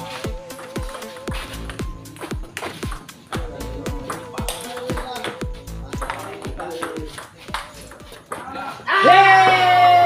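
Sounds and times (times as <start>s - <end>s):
background music with beat: 0.0s - 8.6s
ping pong ball clicking: 4.0s - 8.5s.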